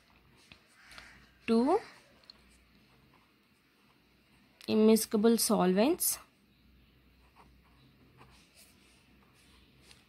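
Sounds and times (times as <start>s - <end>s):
marker writing on whiteboard: 7.2s - 10.0s.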